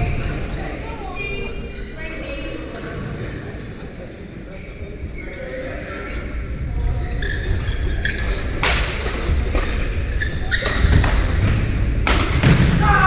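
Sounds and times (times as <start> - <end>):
shoe squeaks on court: 4.5 - 6.3, 6.9 - 8.6, 9.6 - 11.0.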